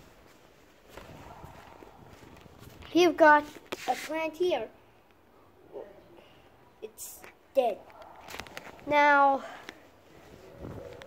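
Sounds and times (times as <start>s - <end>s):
faint footsteps: 0.0s - 4.3s, 7.2s - 11.0s.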